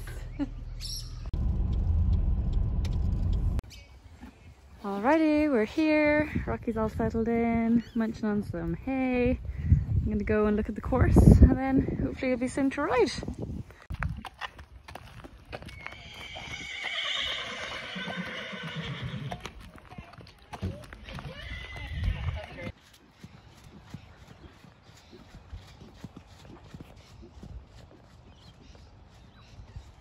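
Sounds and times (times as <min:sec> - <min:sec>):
faint hoofbeats: 0:13.7 - 0:30.0
horse whinnying: 0:15.7 - 0:19.5, 0:21.0 - 0:22.6.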